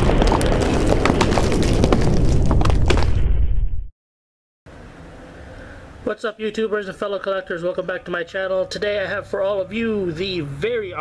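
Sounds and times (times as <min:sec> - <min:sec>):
falling debris clattering: 0:00.0 - 0:03.4.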